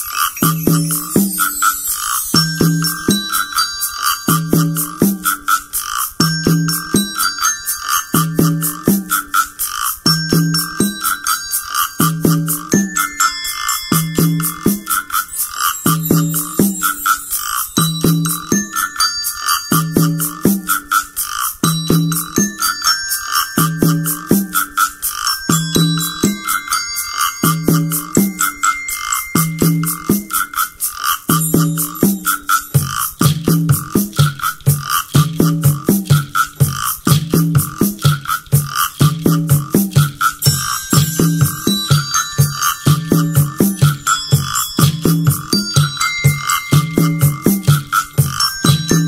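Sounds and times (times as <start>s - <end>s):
fast ticking hand percussion: 0.0s - 49.0s
ringing desk bells melody: 0.0s - 49.0s
low repeating beat: 29.4s - 49.0s.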